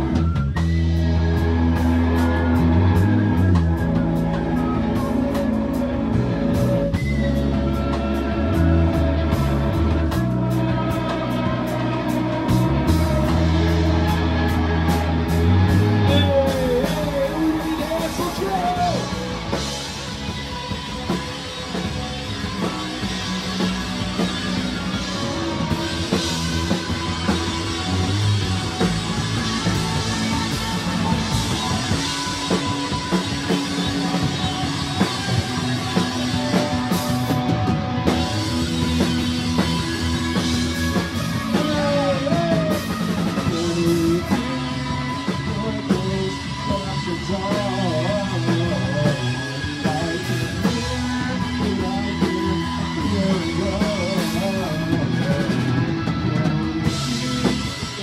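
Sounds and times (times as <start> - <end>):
bass guitar: 0.0 - 58.0
drum kit: 0.0 - 58.0
electric guitar: 0.0 - 58.0.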